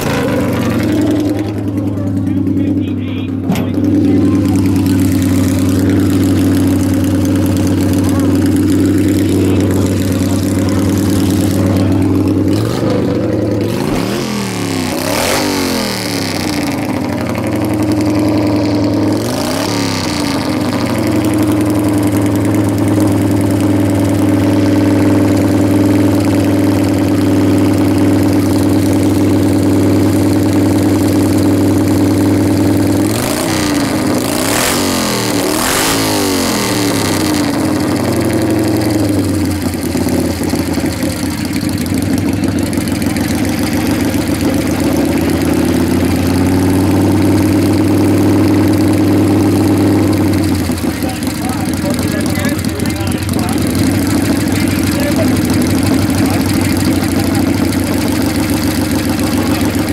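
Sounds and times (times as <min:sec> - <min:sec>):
motorcycle engine idling and revving: 0:00.0 - 0:59.9.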